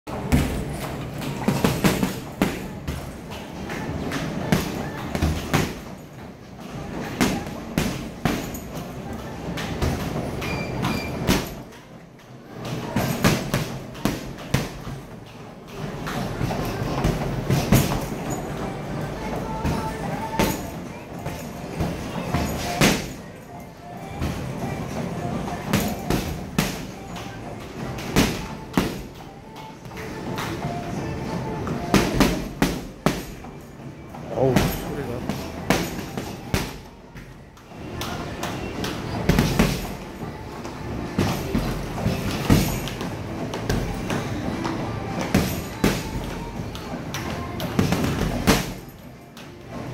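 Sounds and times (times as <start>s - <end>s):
boxing gloves hitting heavy bag: 0.1s - 3.2s, 4.5s - 6.0s, 7.0s - 8.9s, 12.8s - 15.1s, 16.7s - 18.5s, 19.5s - 23.2s, 25.6s - 27.1s, 27.9s - 29.2s, 31.8s - 33.5s, 34.4s - 36.9s, 39.2s - 40.0s, 41.2s - 44.4s, 45.2s - 46.6s, 47.2s - 49.0s.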